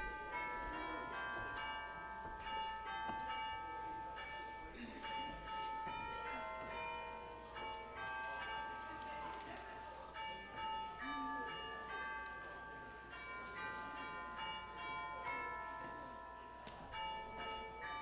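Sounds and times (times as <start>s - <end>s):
bell-like instrumental music: 0.0s - 18.0s.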